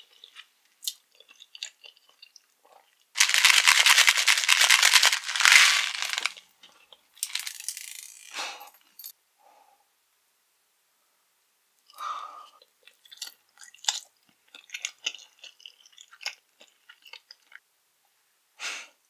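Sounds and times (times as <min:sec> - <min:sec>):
rustling: 0:03.2 - 0:06.4
small candies rattling in a box: 0:03.2 - 0:06.4, 0:07.2 - 0:08.3.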